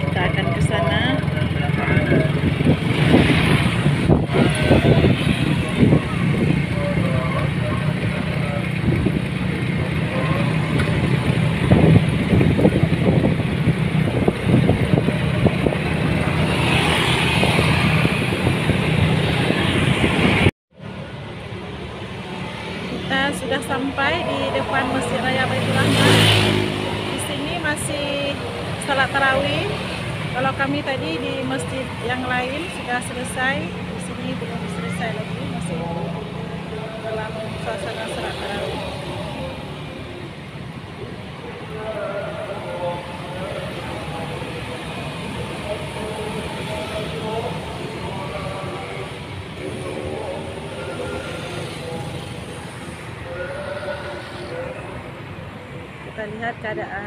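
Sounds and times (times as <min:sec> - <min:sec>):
road traffic: 0:00.0 - 0:57.0
voices: 0:00.0 - 0:57.0
wind buffeting microphone: 0:02.0 - 0:07.7, 0:08.6 - 0:20.5.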